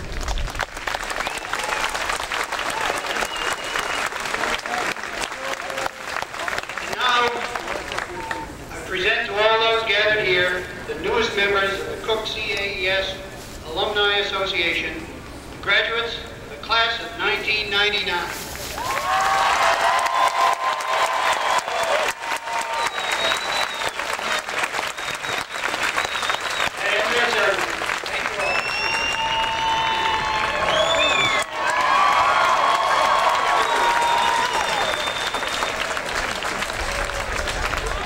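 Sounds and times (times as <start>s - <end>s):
crowd applauding: 0.0s - 8.6s, 18.8s - 38.0s
crowd shouting and whistling: 1.2s - 2.0s, 2.6s - 4.4s, 19.6s - 27.2s, 28.3s - 36.1s.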